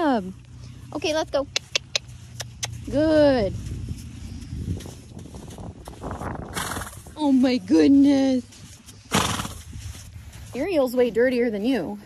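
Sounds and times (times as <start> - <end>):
hoofsteps on sand: 0.0 - 12.0
wind noise on microphone: 2.4 - 11.3.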